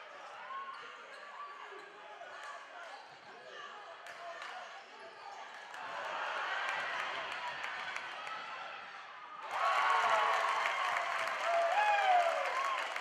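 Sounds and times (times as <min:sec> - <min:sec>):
voices in gym: 0:00.0 - 0:09.6.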